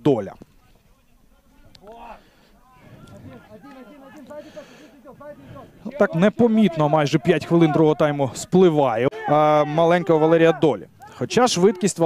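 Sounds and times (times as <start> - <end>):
distant people shouting: 9.0 - 12.0.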